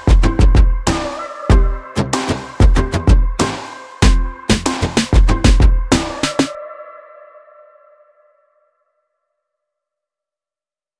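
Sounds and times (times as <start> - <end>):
electronic music: 0.0 - 8.2.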